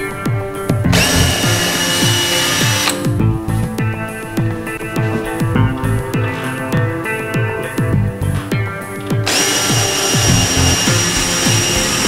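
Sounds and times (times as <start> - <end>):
background music with beat: 0.0 - 12.0
cordless drill boring into wall: 0.9 - 3.1, 9.3 - 12.0.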